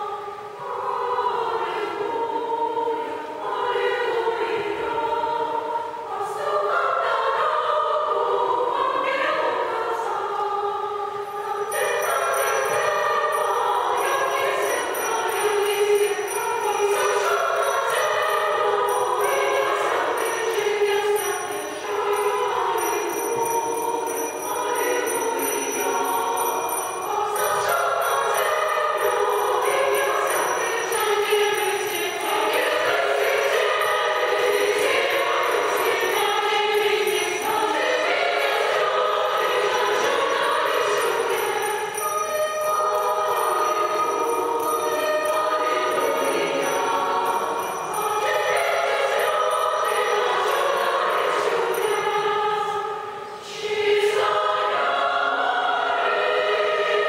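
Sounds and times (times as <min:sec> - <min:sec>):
girls choir singing carol: 0:00.0 - 0:57.0
small bells jingling: 0:11.4 - 0:57.0.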